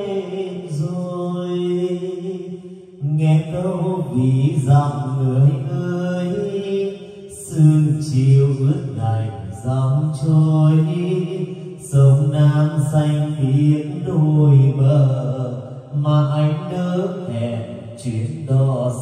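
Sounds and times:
person singing slow song: 0.0 - 19.0.

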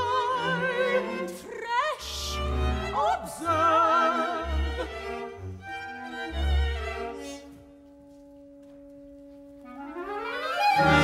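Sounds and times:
orchestral opera music: 0.0 - 11.0.

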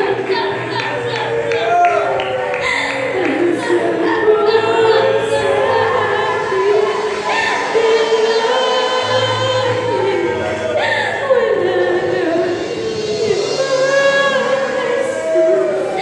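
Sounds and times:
choir singing gospel song: 0.0 - 16.0.

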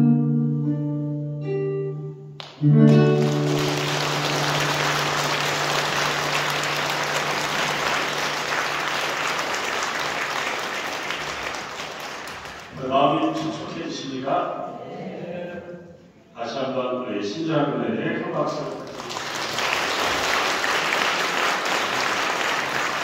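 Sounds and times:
audience applause: 2.4 - 12.9, 18.7 - 23.0
live song held final chord: 2.5 - 11.2.

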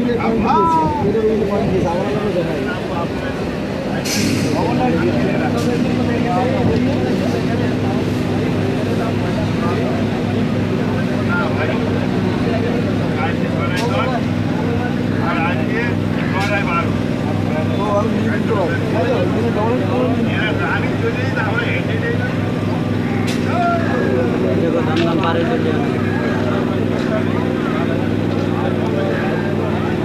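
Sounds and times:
passengers talking: 0.0 - 30.0.

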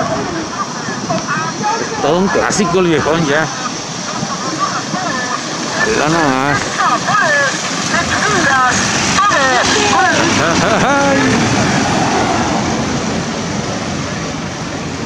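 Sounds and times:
street and motor noise: 0.0 - 15.0
voices: 0.0 - 15.0.

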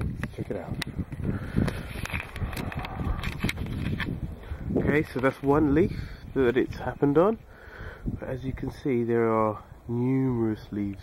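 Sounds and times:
camera handling bumps and clicks: 0.0 - 4.2
low rumble: 1.0 - 6.4.

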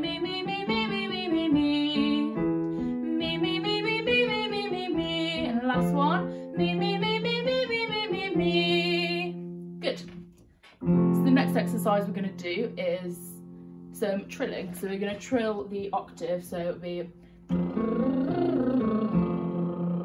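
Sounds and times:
woman singing vocal warm-up: 0.0 - 9.4, 14.0 - 20.0
digital piano chords: 0.0 - 20.0.

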